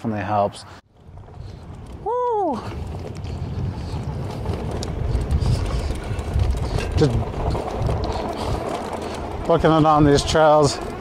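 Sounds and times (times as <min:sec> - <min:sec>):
bike tyres rolling over grass: 0:00.9 - 0:11.0
wind rushing over microphone: 0:00.9 - 0:11.0.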